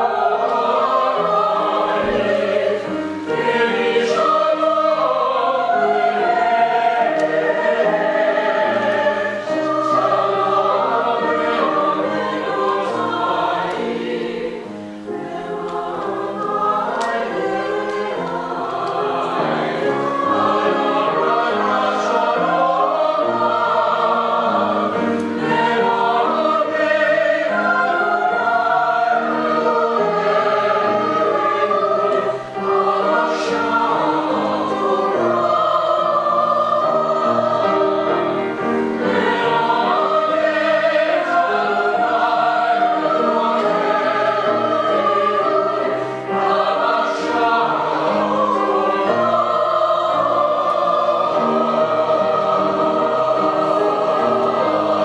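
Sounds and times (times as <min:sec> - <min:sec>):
mixed choir singing in harmony: 0:00.0 - 0:55.0.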